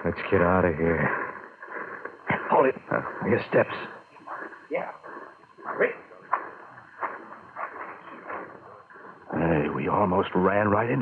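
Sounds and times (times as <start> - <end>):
footsteps walking: 4.2 - 9.2.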